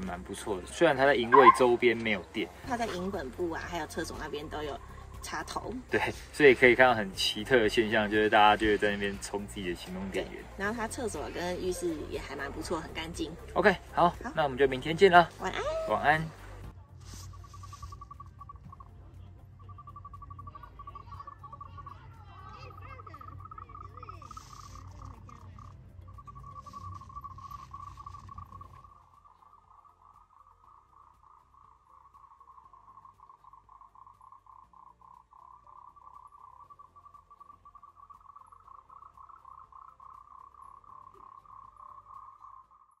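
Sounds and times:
frogs calling: 0:00.0 - 0:43.0
low rumble: 0:07.0 - 0:42.7.

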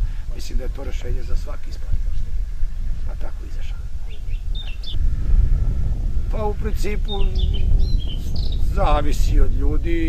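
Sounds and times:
small birds chirping: 0:00.0 - 0:05.0, 0:06.4 - 0:10.0
steady low rumble: 0:00.0 - 0:10.0.

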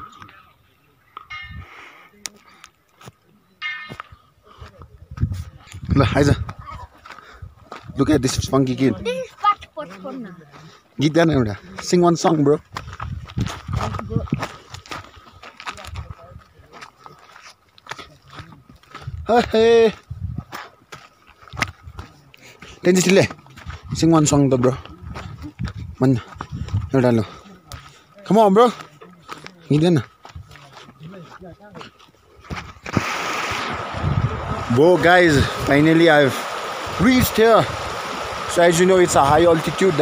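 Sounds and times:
footsteps on gravelly trail: 0:01.3 - 0:34.0
stream flowing over stones: 0:32.8 - 0:40.0
person speaking: 0:38.5 - 0:40.0.

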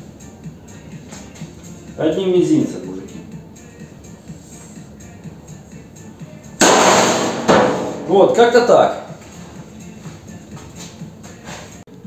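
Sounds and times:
metal hood slamming shut: 0:06.6 - 0:08.2
metallic clang: 0:06.6 - 0:08.2.

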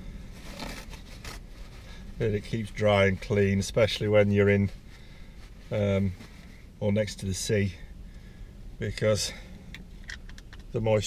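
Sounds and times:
soft rustling: 0:00.2 - 0:07.3.

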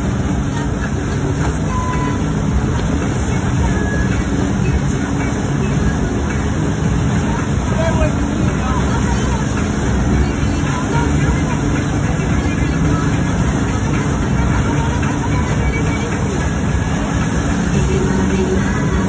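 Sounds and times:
boat engine and churning wake: 0:00.0 - 0:19.0
faint voices: 0:00.0 - 0:19.0.

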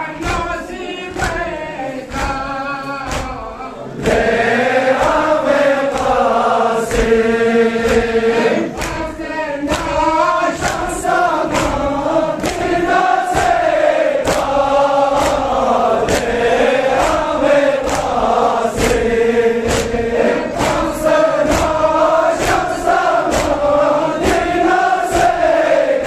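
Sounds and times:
men chanting a lament: 0:00.0 - 0:26.0
rhythmic chest-beating slaps: 0:00.0 - 0:26.0.

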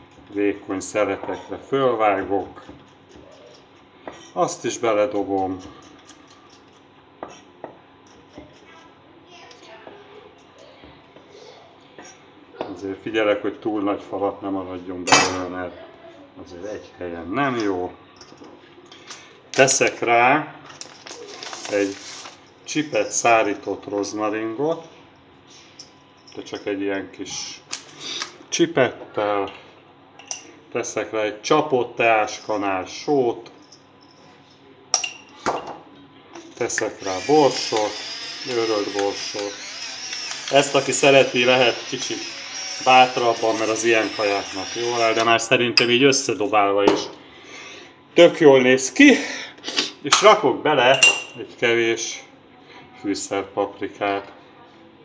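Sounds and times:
metal spoon clinking: 0:35.0 - 0:35.3, 0:50.9 - 0:51.4.

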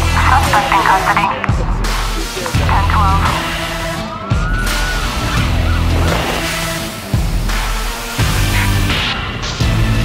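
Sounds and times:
background music with heavy bass: 0:00.0 - 0:10.0.

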